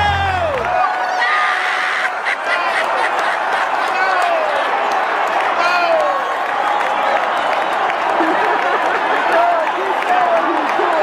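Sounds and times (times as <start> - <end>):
crowd cheering and laughing: 0.0 - 11.0
people yelling: 0.0 - 11.0.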